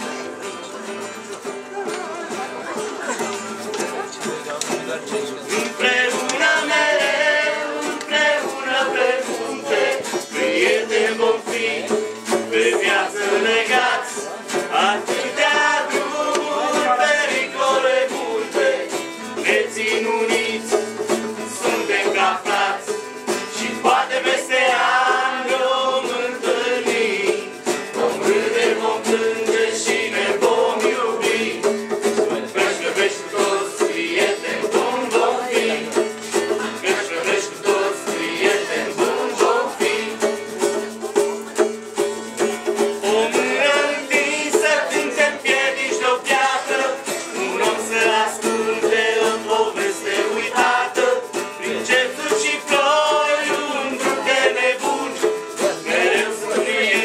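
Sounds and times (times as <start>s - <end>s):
acoustic band music: 0.0s - 57.0s.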